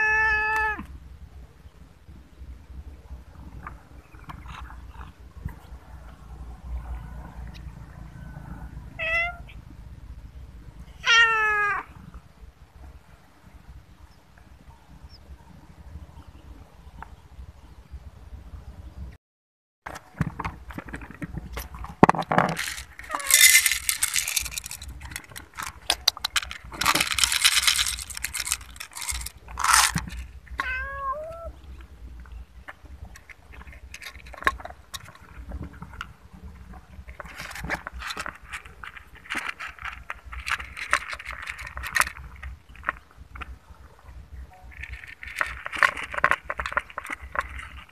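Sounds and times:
cat meowing: 0:00.0 - 0:00.9, 0:09.0 - 0:09.6, 0:11.0 - 0:11.9, 0:30.6 - 0:31.6
kibble rattling into plastic bowl: 0:19.9 - 0:30.4, 0:33.1 - 0:36.0, 0:37.0 - 0:43.5, 0:44.7 - 0:47.9.

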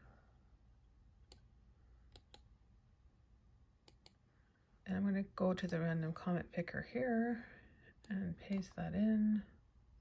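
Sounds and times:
computer mouse clicks: 0:01.2 - 0:01.5, 0:02.1 - 0:02.5, 0:03.8 - 0:04.2, 0:08.0 - 0:08.8.

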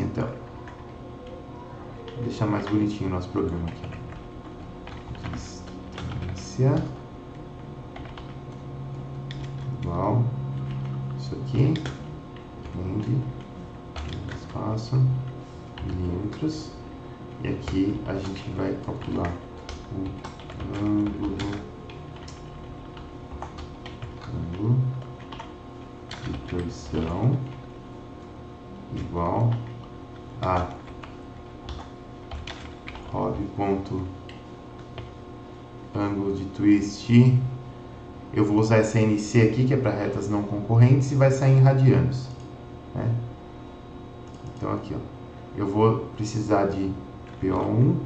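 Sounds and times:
computer keyboard keystrokes: 0:02.1 - 0:08.6, 0:09.2 - 0:16.6, 0:17.5 - 0:27.6, 0:29.0 - 0:33.2, 0:44.2 - 0:44.7.

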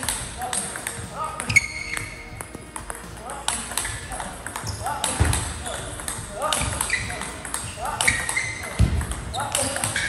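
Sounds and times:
ping pong ball clicking: 0:00.0 - 0:10.0
shoe squeaking on floor: 0:01.0 - 0:02.7, 0:03.5 - 0:10.0.

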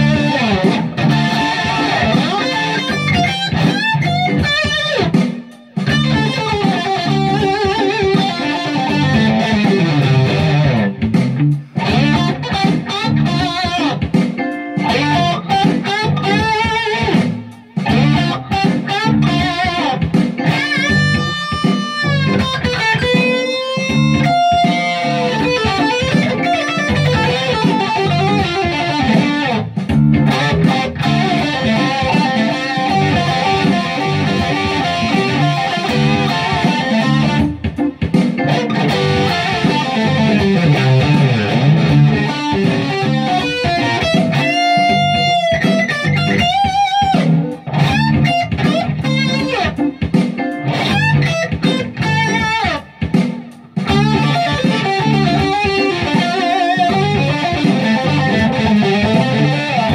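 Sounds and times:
electric guitar jam: 0:00.0 - 0:59.9.

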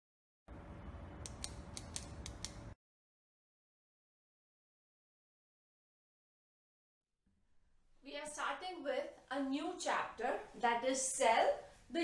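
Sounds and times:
sharp crisp clicks: 0:01.2 - 0:02.8.

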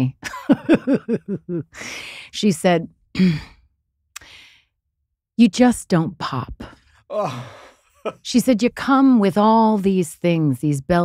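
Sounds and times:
breathy in-breath: 0:01.7 - 0:02.3, 0:04.2 - 0:04.7, 0:07.1 - 0:07.8.

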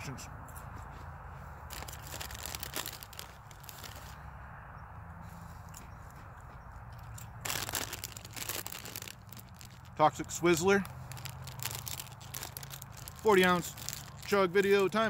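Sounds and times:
chip bag crinkling: 0:01.7 - 0:04.2, 0:07.4 - 0:15.0
chips crunching: 0:01.7 - 0:04.2, 0:07.4 - 0:15.0.

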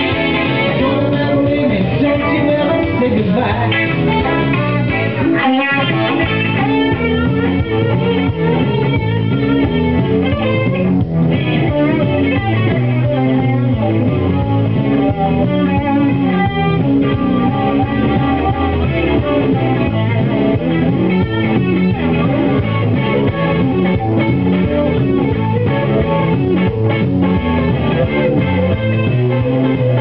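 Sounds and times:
electric guitar lead line: 0:00.0 - 0:30.0
guitar and bass accompaniment: 0:00.0 - 0:30.0.

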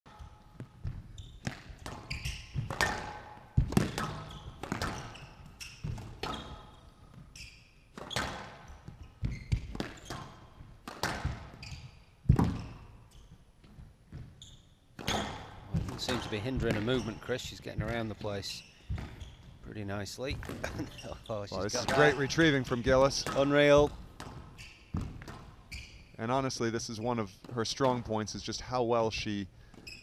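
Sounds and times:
shoes squeaking on court floor: 0:00.1 - 0:28.1, 0:29.7 - 0:30.0
squash ball smacks: 0:00.8 - 0:05.1, 0:09.5 - 0:11.6.

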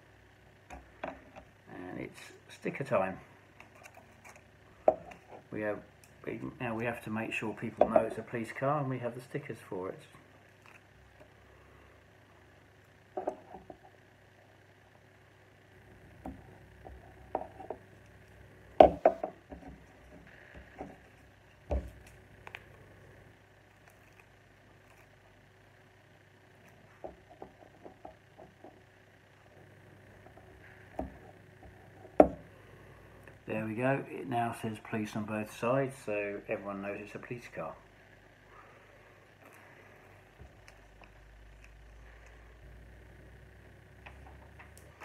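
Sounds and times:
faint steady hum: 0:00.0 - 0:45.0.

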